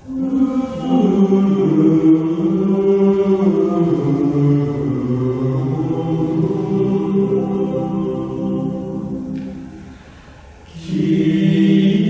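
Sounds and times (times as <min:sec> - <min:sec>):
male choir singing chords: 0:00.0 - 0:12.0.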